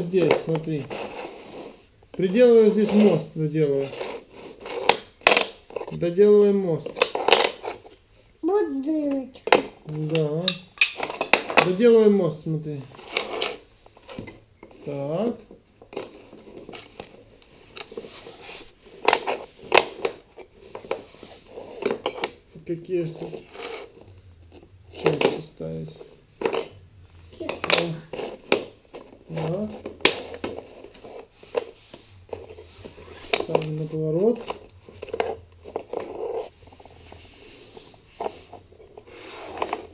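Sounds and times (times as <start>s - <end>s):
wooden track pieces clacking: 3.9s - 5.9s
person speaking: 26.9s - 28.4s, 32.7s - 34.6s.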